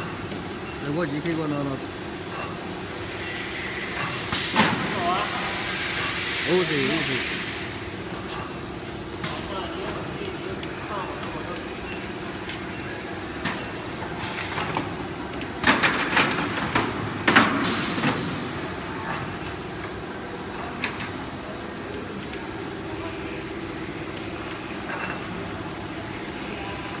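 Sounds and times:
sharp clatter and hiss: 0:02.3 - 0:10.1, 0:13.4 - 0:21.4.

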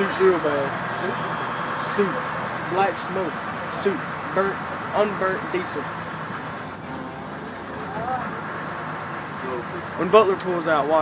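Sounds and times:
diesel bus engine idling: 0:00.0 - 0:11.0
faint voices: 0:00.0 - 0:11.0.

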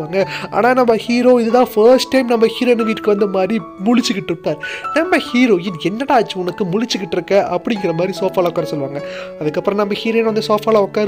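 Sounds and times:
background music: 0:00.0 - 0:11.0
voiceover narration: 0:00.0 - 0:11.0.

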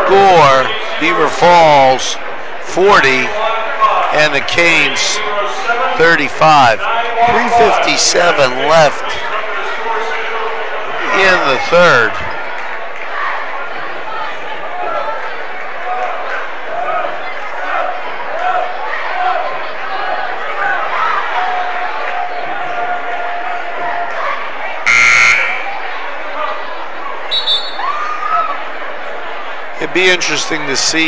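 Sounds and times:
crowd chatter: 0:00.0 - 0:31.0
scoreboard horn buzz: 0:24.9 - 0:25.8.

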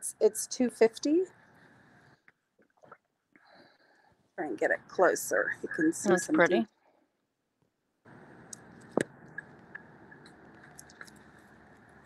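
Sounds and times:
faint steady hiss: 0:00.0 - 0:06.7, 0:08.1 - 0:12.0.

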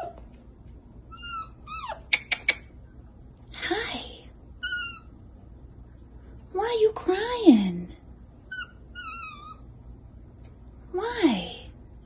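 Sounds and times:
puppy whimpering: 0:00.0 - 0:00.2, 0:01.1 - 0:02.6, 0:04.6 - 0:05.2, 0:08.4 - 0:09.7.

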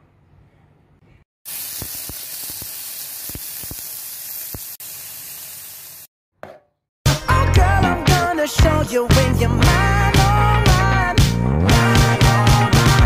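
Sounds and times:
food sizzling in hot oil: 0:01.5 - 0:06.1
oil popping and crackling: 0:01.5 - 0:06.1.

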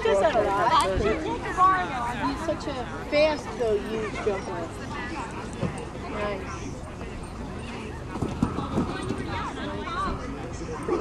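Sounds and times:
background voices talking: 0:00.0 - 0:11.0.

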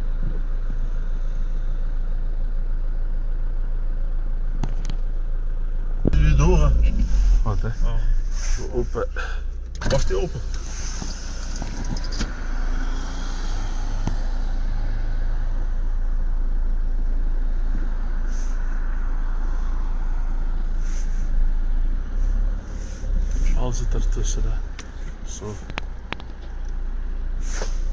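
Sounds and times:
car engine rumble: 0:00.0 - 0:27.9
road noise: 0:00.0 - 0:27.9.

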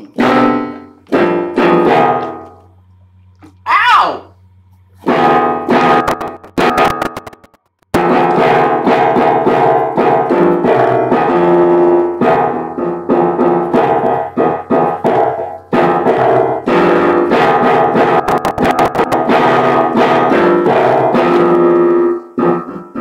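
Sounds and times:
piano playing: 0:00.0 - 0:03.3, 0:04.9 - 0:23.0
low steady hum: 0:00.0 - 0:19.8.

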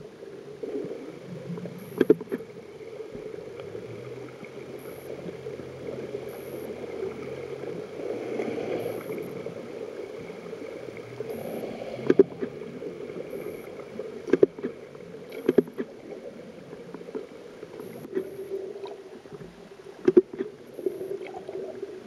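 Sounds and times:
muffled underwater rushing: 0:00.0 - 0:22.0.

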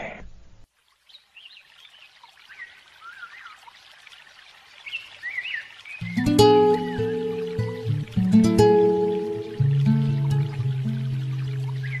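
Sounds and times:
water trickling: 0:00.7 - 0:12.0
birds chirping: 0:04.8 - 0:12.0.

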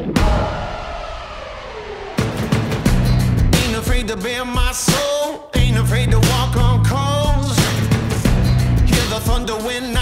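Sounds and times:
falling tone sweep: 0:00.0 - 0:03.8
sudden hit: 0:00.0 - 0:04.1
background music: 0:00.0 - 0:10.0.

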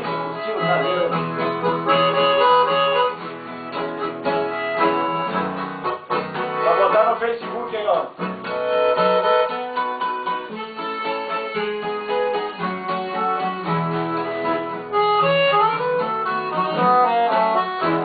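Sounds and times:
piano accordion: 0:00.0 - 0:07.1, 0:08.4 - 0:18.0
acoustic guitar: 0:00.0 - 0:18.0.

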